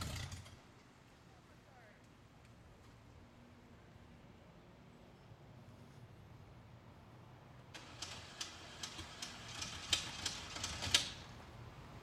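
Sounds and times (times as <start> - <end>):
pickup truck engine rumble: 0.0 - 0.7, 7.8 - 11.6.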